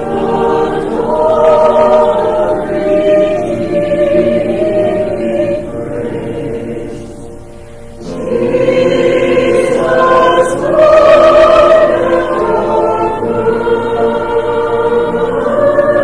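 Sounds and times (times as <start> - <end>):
congregation singing a hymn: 0.0 - 16.0.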